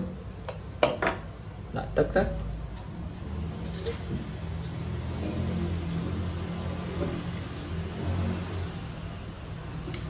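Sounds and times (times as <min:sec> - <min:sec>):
low engine hum: 0:02.5 - 0:10.0.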